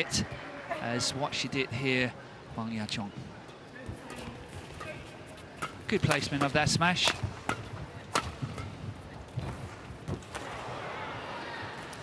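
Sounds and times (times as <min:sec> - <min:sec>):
crowd noise in hall: 0:00.0 - 0:12.0
racket hitting shuttlecock: 0:05.6 - 0:08.8.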